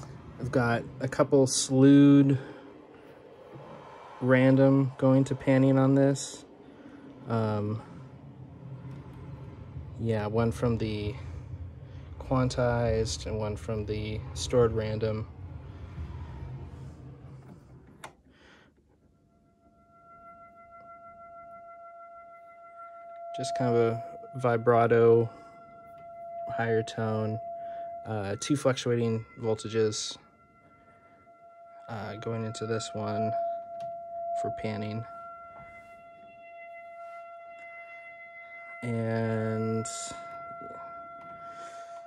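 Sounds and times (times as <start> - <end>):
pure oscillator tone: 0.0 - 18.2, 19.2 - 42.0.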